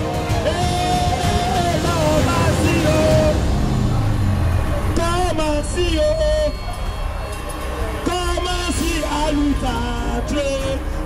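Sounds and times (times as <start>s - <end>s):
steady low rumble: 0.2s - 11.0s.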